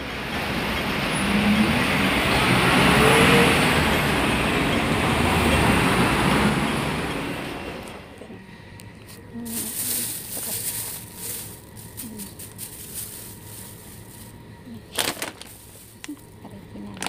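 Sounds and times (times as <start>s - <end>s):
heavy traffic rushing past: 0.0s - 8.8s.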